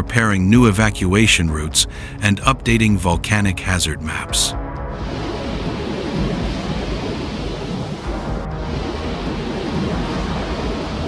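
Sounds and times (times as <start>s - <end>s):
steady rumbling noise: 0.0s - 11.0s.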